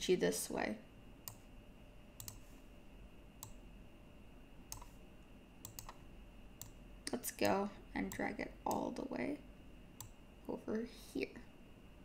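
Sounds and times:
computer mouse clicks: 1.2s - 1.4s, 2.2s - 2.5s, 3.4s - 3.6s, 4.7s - 5.0s, 5.6s - 6.0s, 6.6s - 8.9s, 10.0s - 10.2s.

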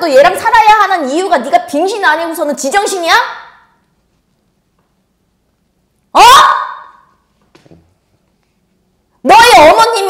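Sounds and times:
woman's sharp interjection: 6.2s - 7.1s.

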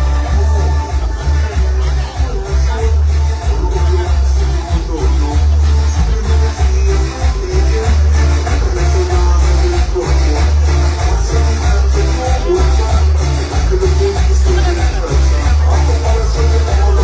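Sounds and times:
loud latin dance music: 0.0s - 17.0s.

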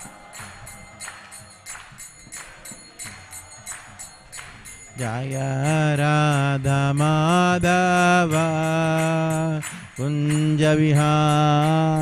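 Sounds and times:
hand cymbals jingling: 0.0s - 12.0s
man chanting: 4.9s - 12.0s.

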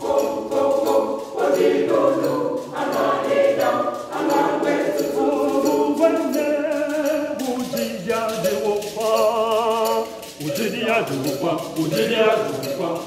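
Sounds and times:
children's choir singing: 0.0s - 13.0s.

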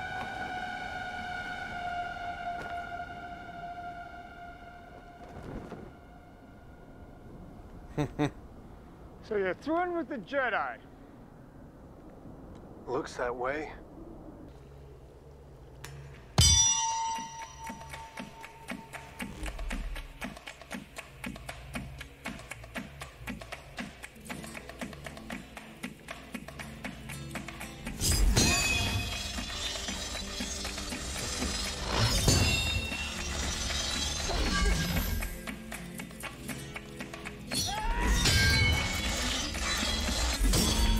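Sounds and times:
metallic clang ringing: 16.4s - 18.8s.

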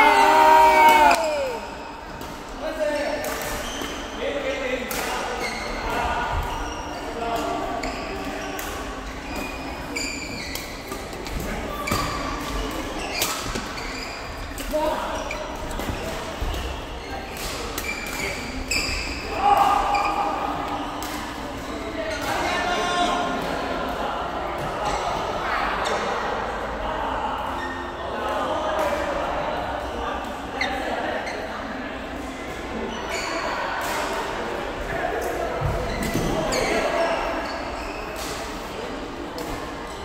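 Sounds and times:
voices in a hall: 0.0s - 40.0s.

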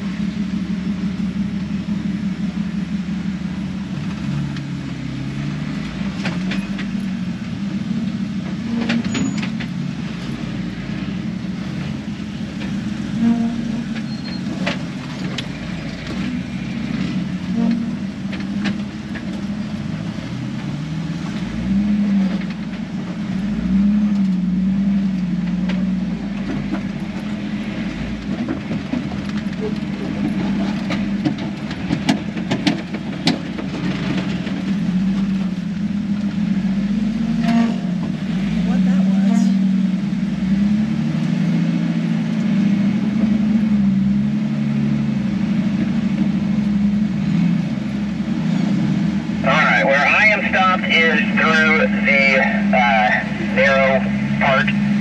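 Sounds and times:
vehicle engine at low revs: 0.0s - 55.0s.

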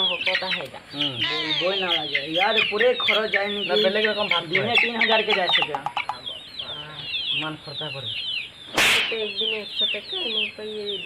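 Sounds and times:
chickens clucking: 0.0s - 11.0s
chicks peeping: 0.0s - 11.0s.

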